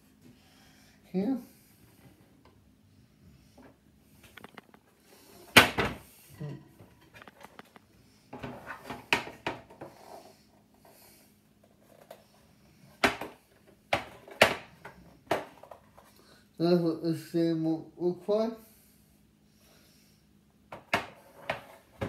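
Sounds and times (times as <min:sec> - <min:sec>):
plastic parts knocking and clicking: 0:04.3 - 0:04.8.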